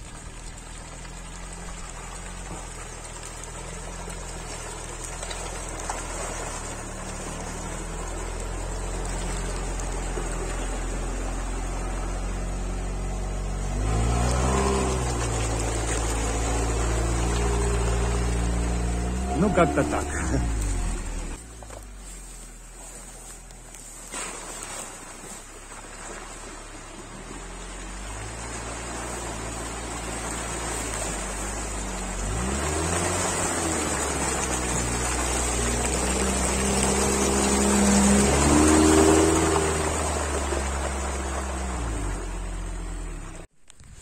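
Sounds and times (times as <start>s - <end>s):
all-terrain vehicle engine: 0.0s - 44.0s
water and mud churning: 0.0s - 44.0s.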